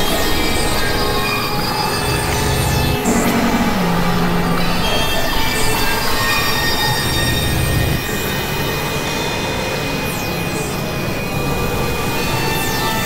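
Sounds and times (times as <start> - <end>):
synthesizer drones: 0.0 - 8.1
falling high sweep: 3.0 - 6.5.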